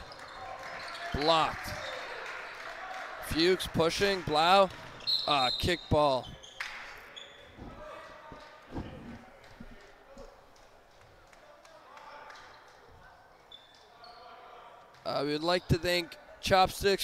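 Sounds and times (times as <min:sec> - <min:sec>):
faint voices of players and crowd: 0:00.0 - 0:17.0.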